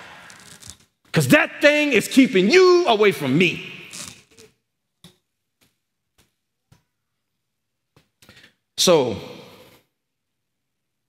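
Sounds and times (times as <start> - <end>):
man's voice: 1.2 - 3.8.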